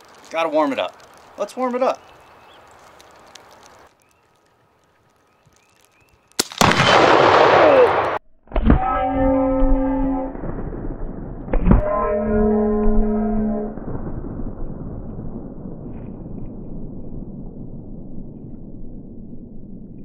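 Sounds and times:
air rifle shot: 6.4s - 8.2s
loud explosion blast: 6.4s - 8.9s, 13.5s - 20.0s.

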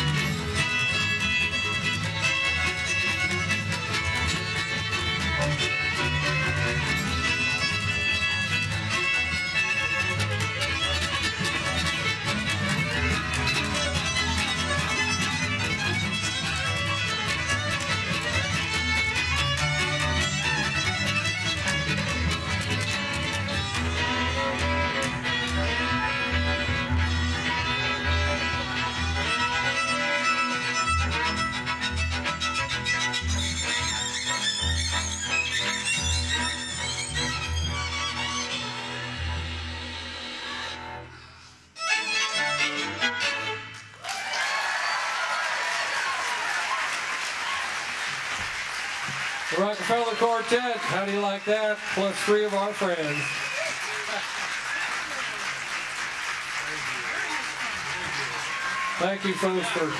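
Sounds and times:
string ensemble playing a tune: 0.0s - 41.1s, 41.7s - 44.0s, 49.5s - 59.9s.

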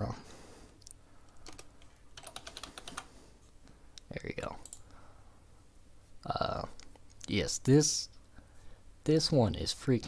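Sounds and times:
computer keyboard typing: 1.4s - 3.1s, 4.6s - 4.8s.

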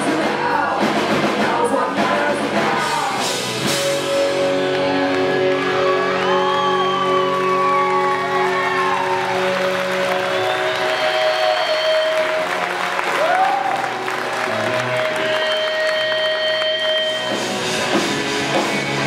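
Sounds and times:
rock band playing: 0.0s - 19.0s
electric guitars ringing: 2.9s - 19.0s
crowd applauding and whistling: 3.8s - 19.0s.

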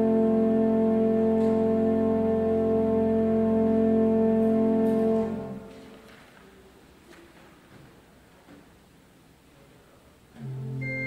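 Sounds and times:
church organ chords: 0.0s - 5.8s, 10.4s - 11.0s.

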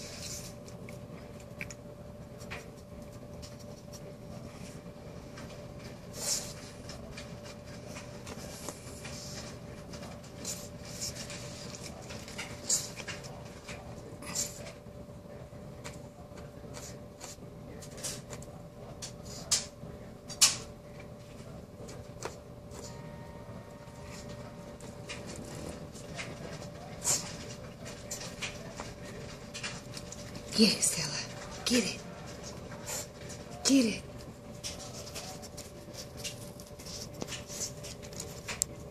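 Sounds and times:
dog sniffing and snuffling: 0.0s - 14.8s, 15.8s - 19.7s, 23.9s - 38.9s
paws scraping carpet: 24.0s - 38.9s.

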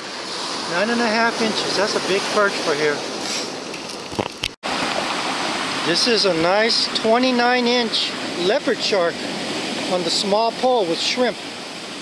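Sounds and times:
surf on rocky beach: 0.0s - 12.0s
wind: 0.0s - 12.0s.

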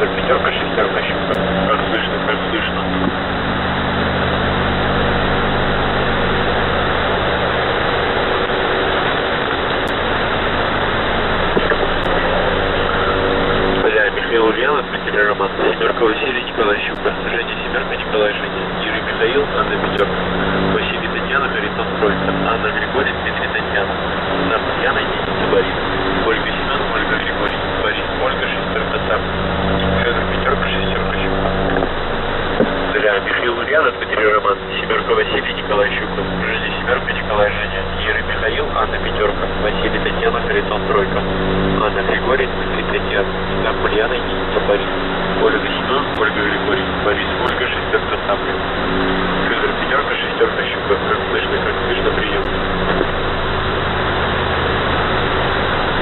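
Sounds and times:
person speaking over radio: 0.0s - 3.2s, 11.5s - 31.9s, 32.6s - 53.2s
radio static and interference: 0.0s - 56.0s
steady low hum: 0.0s - 56.0s.

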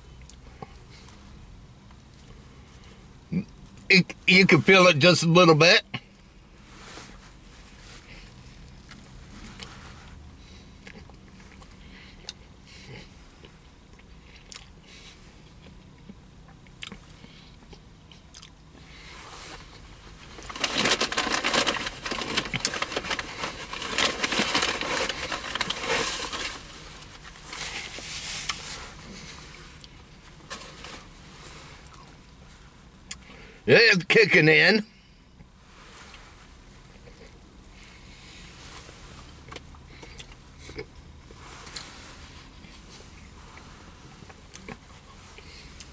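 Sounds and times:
man chewing food: 10.7s - 26.4s, 39.2s - 41.9s, 42.5s - 45.9s.

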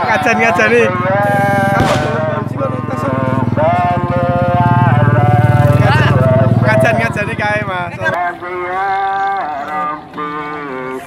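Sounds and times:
man's voice over loudspeaker: 0.0s - 8.3s.

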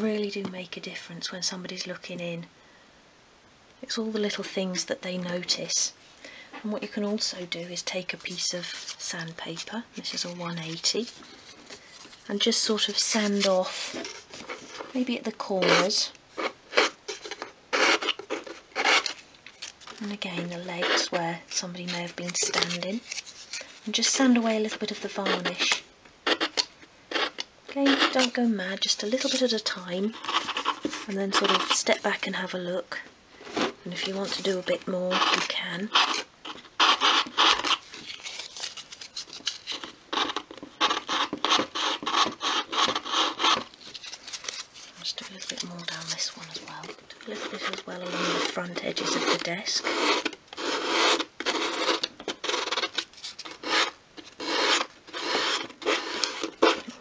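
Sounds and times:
sandpaper rasping on wood: 53.6s - 56.8s.

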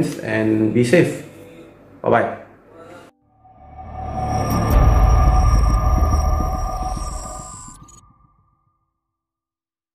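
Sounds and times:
deep rumble: 3.3s - 8.6s
high ringing tones: 3.3s - 8.7s.

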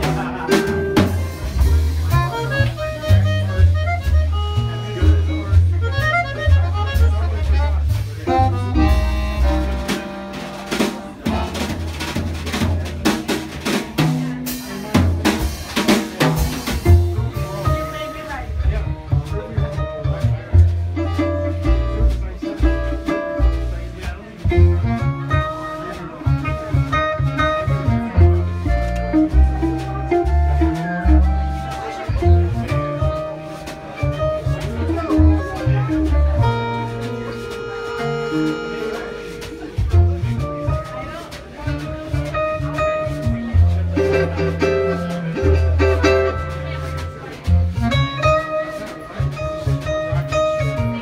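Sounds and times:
small jazz band playing: 0.0s - 51.0s
walking bass line: 0.0s - 51.0s.

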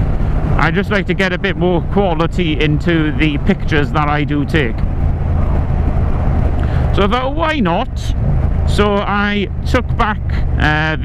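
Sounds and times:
wind noise on microphone: 0.0s - 10.6s
motorcycle engine cruising: 0.0s - 11.0s.

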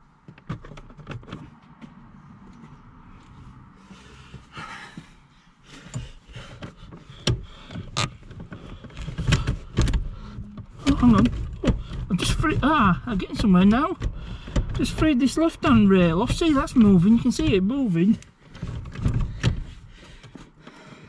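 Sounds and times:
metal clunks of car seat frame: 5.8s - 12.1s.

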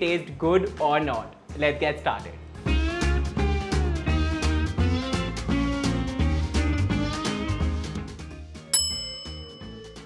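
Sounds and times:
soft background music: 0.0s - 10.0s
bell-like ding: 8.8s - 10.0s.

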